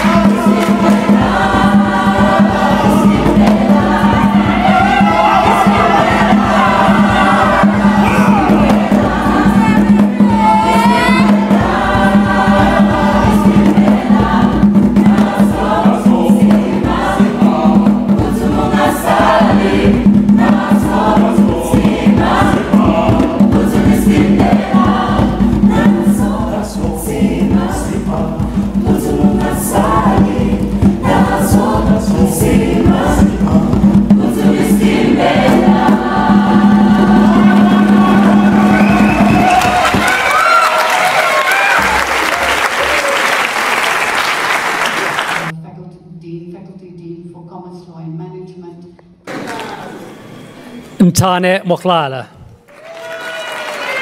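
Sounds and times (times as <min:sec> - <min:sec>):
choir singing upbeat song: 0:00.0 - 0:45.5
hand claps: 0:39.4 - 0:45.5.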